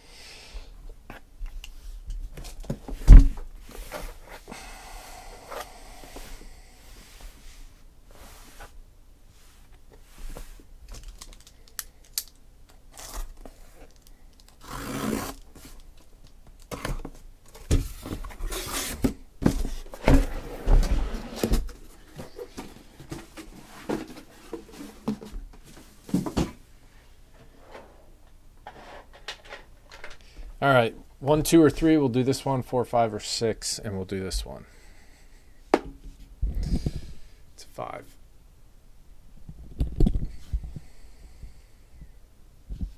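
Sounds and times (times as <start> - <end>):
packing tape tearing: 10.9 - 15.9.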